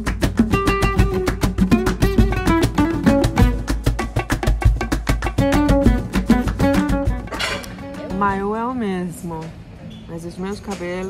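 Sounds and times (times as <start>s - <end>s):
upbeat salsa music: 0.0s - 8.6s.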